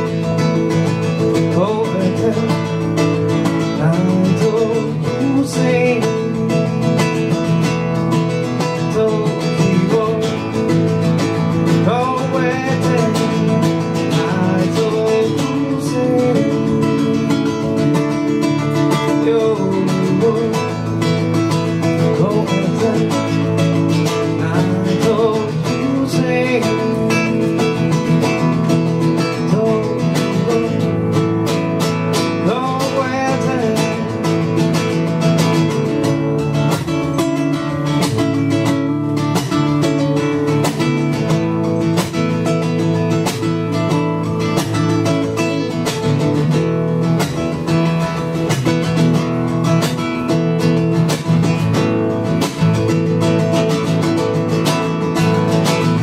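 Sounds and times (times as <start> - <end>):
acoustic guitar strummed: 0.0 - 56.0.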